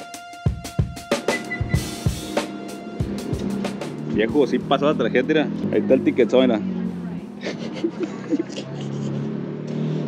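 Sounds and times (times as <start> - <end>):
car engine accelerating: 1.2 - 10.0.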